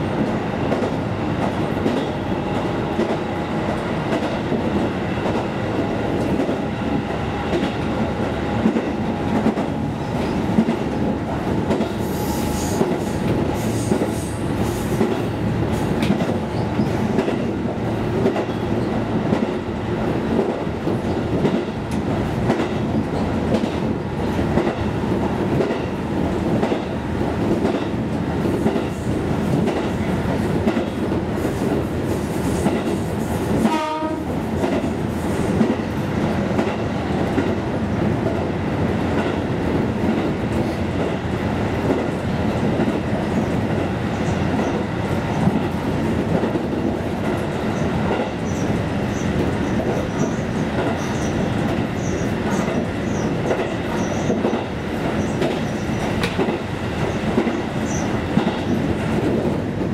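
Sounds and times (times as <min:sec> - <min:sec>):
train horn toot: 0:33.6 - 0:34.4.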